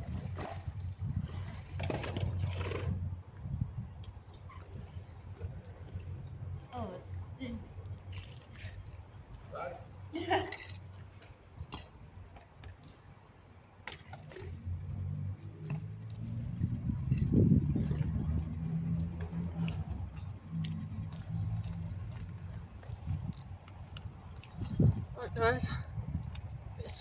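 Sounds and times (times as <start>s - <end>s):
vehicle engine passing by: 14.4s - 22.7s.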